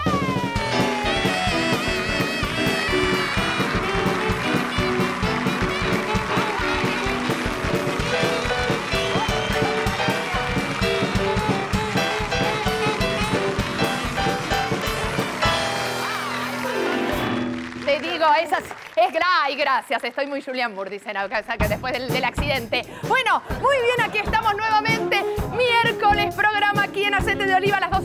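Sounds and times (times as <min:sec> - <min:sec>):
saxophone: 0:00.0 - 0:17.8
keyboard: 0:00.0 - 0:18.2
fast drum beat: 0:00.0 - 0:19.6, 0:21.3 - 0:28.0.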